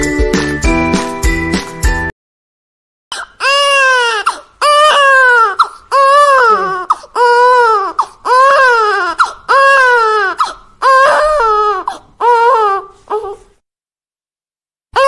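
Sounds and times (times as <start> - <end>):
infant crying: 3.1 - 13.5.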